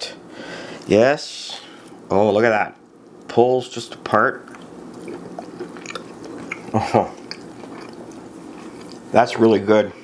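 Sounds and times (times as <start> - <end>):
person chewing: 4.4 - 9.1.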